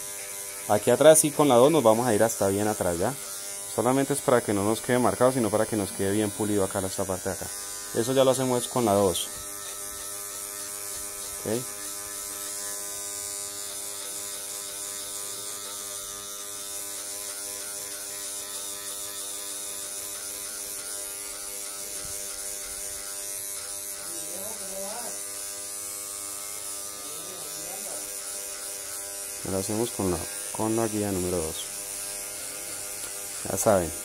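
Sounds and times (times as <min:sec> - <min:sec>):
electric hair clipper humming: 0:00.0 - 0:34.0.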